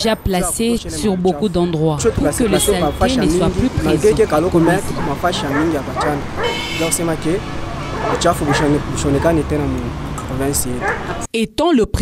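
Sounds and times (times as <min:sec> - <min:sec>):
person talking: 0:00.0 - 0:07.4.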